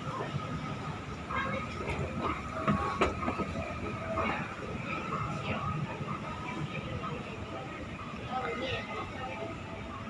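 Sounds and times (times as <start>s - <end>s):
escalator rumble and clatter: 0.0s - 9.1s.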